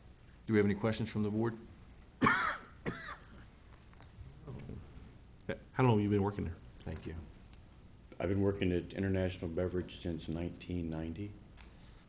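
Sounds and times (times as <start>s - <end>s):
person clearing throat: 2.2s - 3.4s.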